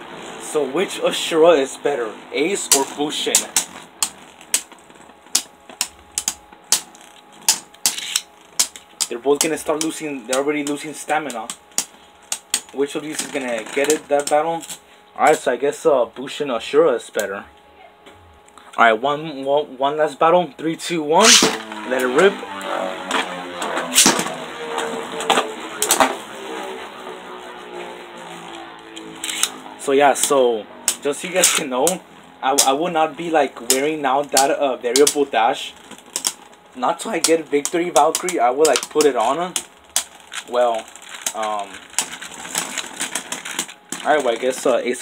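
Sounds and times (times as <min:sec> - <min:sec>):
faint spinning hum: 0:00.0 - 0:45.0
spinning tops clacking together: 0:05.3 - 0:09.2.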